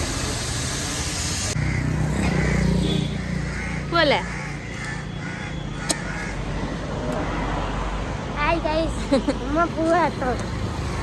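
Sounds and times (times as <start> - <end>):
crows cawing: 1.6 - 7.6.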